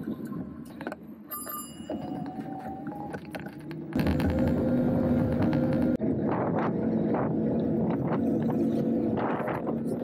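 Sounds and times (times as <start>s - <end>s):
wind and road noise: 0.0s - 10.0s
steady hum: 3.7s - 10.0s.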